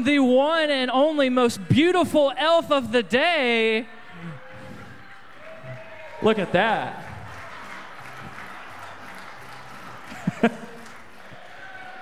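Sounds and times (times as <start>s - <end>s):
audience applauding: 4.2s - 12.0s.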